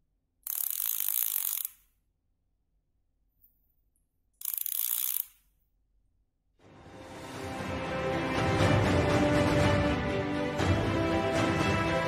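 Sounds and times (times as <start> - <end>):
fishing reel ratcheting: 0.4 - 2.0, 4.4 - 5.5.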